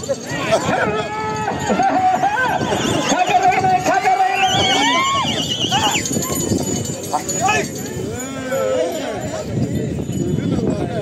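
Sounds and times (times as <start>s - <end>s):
men shouting: 0.2s - 6.4s.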